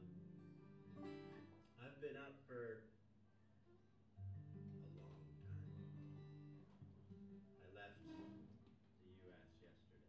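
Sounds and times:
acoustic guitar playing quietly: 0.0s - 2.2s, 3.6s - 8.9s.

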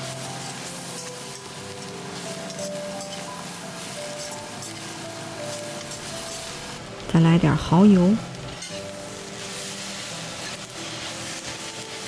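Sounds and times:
spatula stirring in pan: 0.0s - 6.8s, 8.3s - 12.0s
food sizzling in hot oil: 0.0s - 12.0s.

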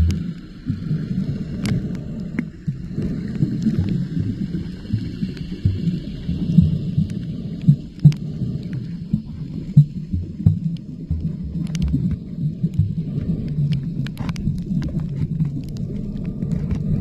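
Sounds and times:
underwater rumble of moving water: 0.0s - 17.0s.

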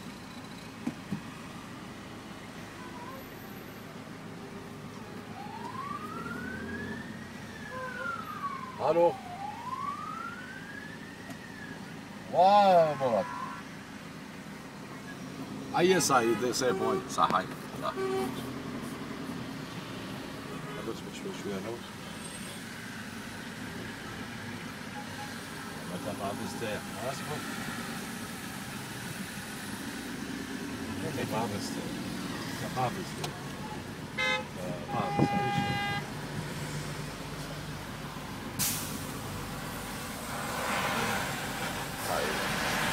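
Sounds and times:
street traffic: 0.0s - 42.9s
air brake hiss: 38.6s - 39.1s.

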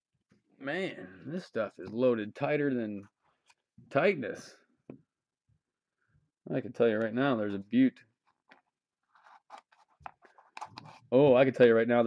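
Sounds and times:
cards and packaging rustling: 8.2s - 11.3s.

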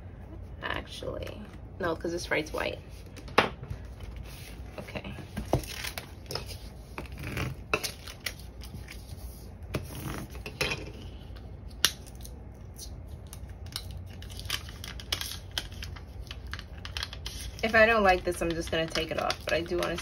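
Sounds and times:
paper and plastic rustling: 13.9s - 20.0s.

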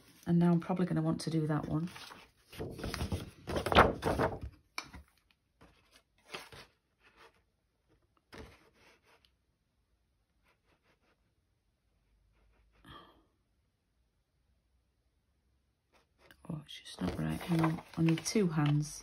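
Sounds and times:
paper rustling and scraping: 1.6s - 4.6s, 5.6s - 7.4s, 17.0s - 19.0s.

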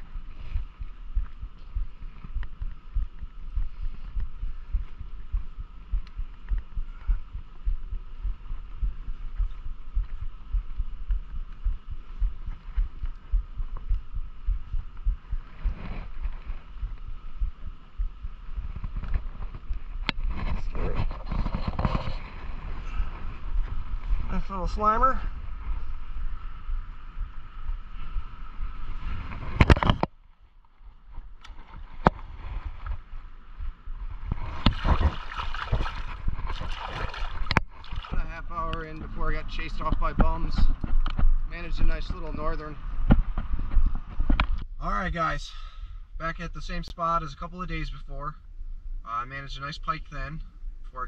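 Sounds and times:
low thumping and rumble: 0.0s - 45.3s.

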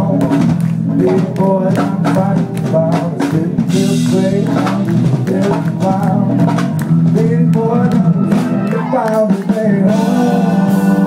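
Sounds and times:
drum kit: 0.0s - 11.0s
electric guitars: 0.0s - 11.0s.

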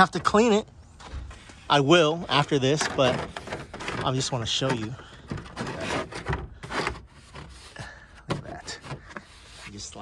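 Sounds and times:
dash cover scraping on dashboard: 2.3s - 10.0s.

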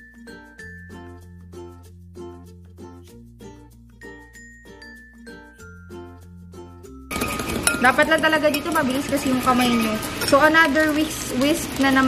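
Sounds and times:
light background music: 0.0s - 12.0s
spoon whisking in glass bowl: 7.1s - 12.0s.

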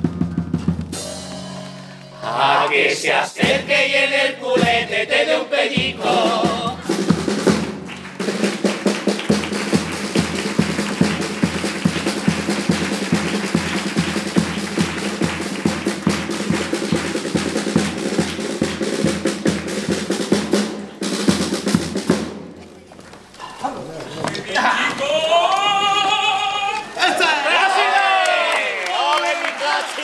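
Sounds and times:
carnival band playing: 0.0s - 22.6s
snare and bass drum beat: 2.3s - 22.6s.

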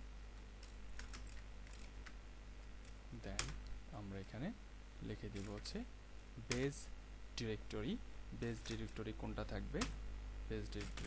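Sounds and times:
typing on computer keyboard: 1.0s - 2.2s, 10.7s - 11.0s.

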